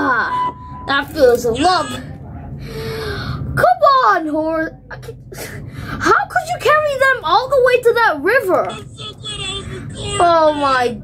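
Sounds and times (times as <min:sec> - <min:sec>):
person gasping: 0:02.6 - 0:03.5.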